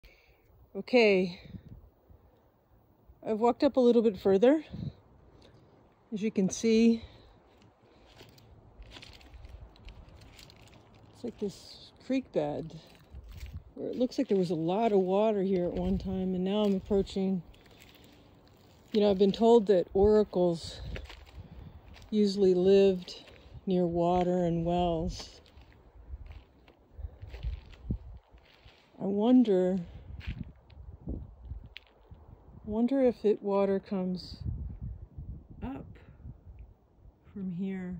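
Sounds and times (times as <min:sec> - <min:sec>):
footsteps crunching on gravel: 0:07.4 - 0:11.8, 0:12.5 - 0:29.0, 0:29.8 - 0:30.6.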